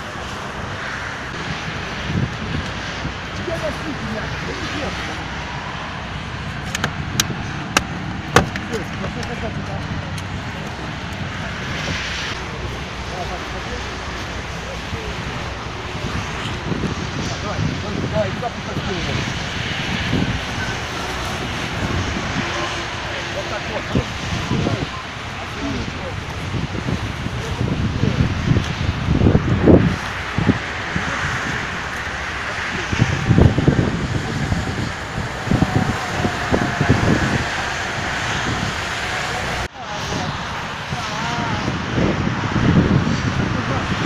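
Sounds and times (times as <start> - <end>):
engine running steadily: 0.0 - 44.0
faint voices: 0.0 - 44.0
wind buffeting microphone: 0.0 - 44.0.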